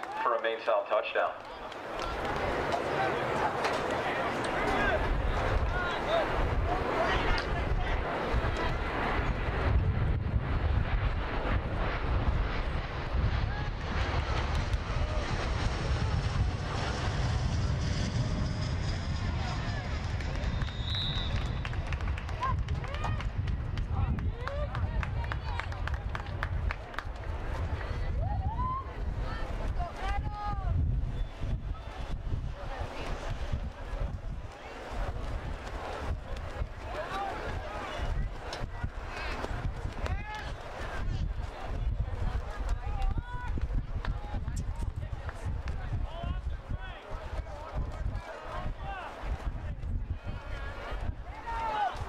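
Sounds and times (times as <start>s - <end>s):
distant shouting and talk: 0.0s - 9.7s, 12.6s - 52.0s
wind on microphone: 1.9s - 52.0s
referee's whistle blast: 20.6s - 21.5s.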